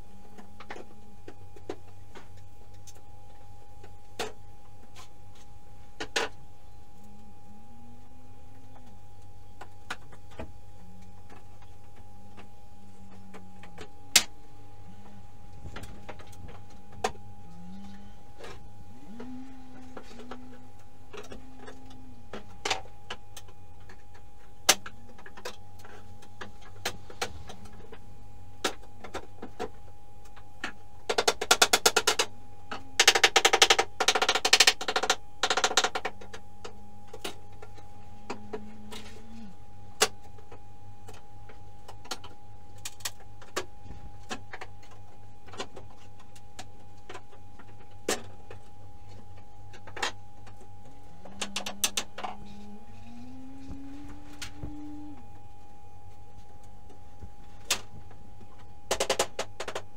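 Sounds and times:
sharp knocks and cracks: 0:28.6 - 0:32.3, 0:57.6 - 0:59.9.

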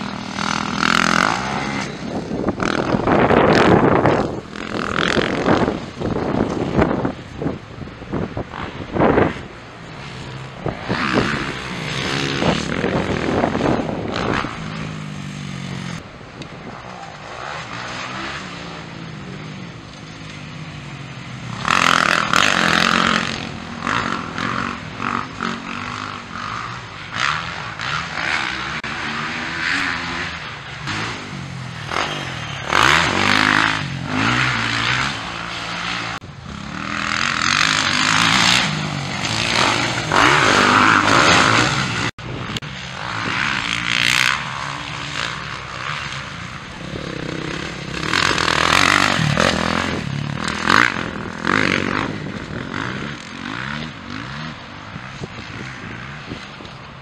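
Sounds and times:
motocross bike engines revving: 0:00.0 - 0:57.0.

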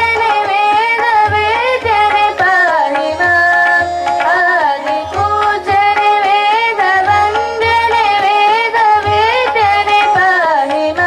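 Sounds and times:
girls singing: 0:00.0 - 0:11.0
harmonium: 0:00.0 - 0:11.0.

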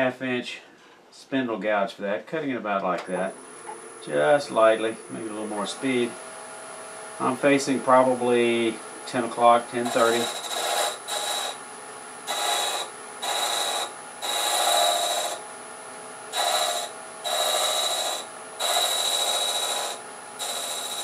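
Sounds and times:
lathe running: 0:08.4 - 0:11.6, 0:12.3 - 0:15.5, 0:16.3 - 0:21.0
gouge scraping wood on lathe: 0:09.8 - 0:11.6, 0:12.3 - 0:15.4, 0:16.3 - 0:21.0.

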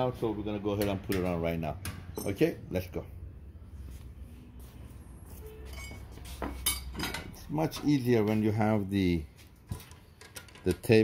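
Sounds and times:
small metal parts clinking: 0:09.9 - 0:11.0.

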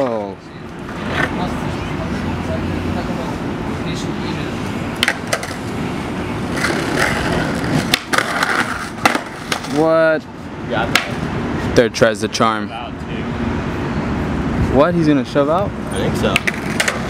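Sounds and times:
skateboard wheels rolling: 0:00.7 - 0:01.7, 0:04.7 - 0:10.1, 0:16.2 - 0:17.0
skateboard clacks: 0:05.0 - 0:05.7, 0:06.5 - 0:09.8, 0:10.9 - 0:11.2, 0:16.3 - 0:17.0.

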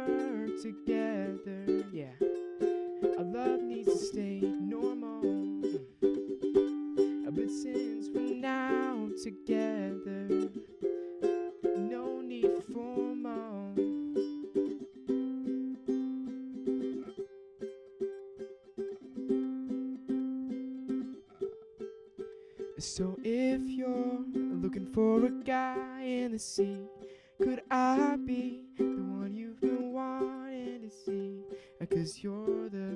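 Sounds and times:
person singing: 0:00.0 - 0:17.2, 0:22.6 - 0:32.9
ukulele strumming: 0:00.0 - 0:32.9.

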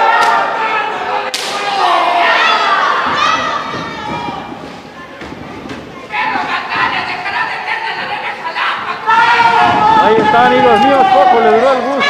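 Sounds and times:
crowd shouting: 0:00.0 - 0:04.7, 0:06.0 - 0:12.0.

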